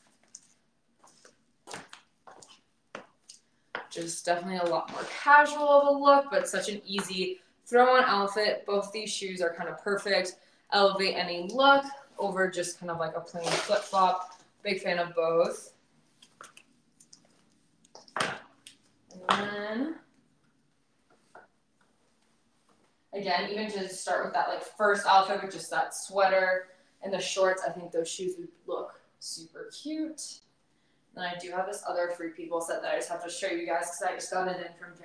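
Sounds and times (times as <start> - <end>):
soft footsteps: 0.0 - 5.3.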